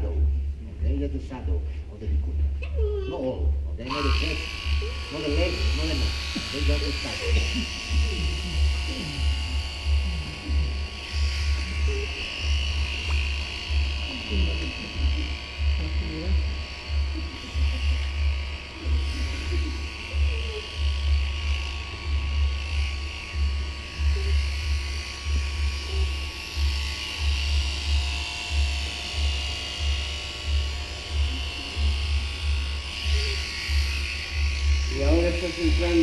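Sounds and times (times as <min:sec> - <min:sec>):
electric shearing machine buzzing: 0:02.7 - 0:36.0.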